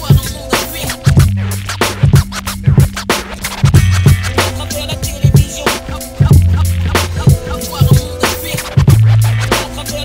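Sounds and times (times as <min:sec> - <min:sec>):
hip-hop beat: 0:00.0 - 0:10.0
turntable scratching: 0:00.0 - 0:10.0.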